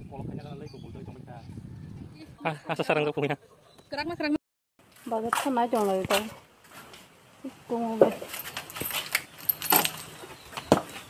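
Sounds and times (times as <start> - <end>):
metallic jingling and rattling: 8.2 - 10.4.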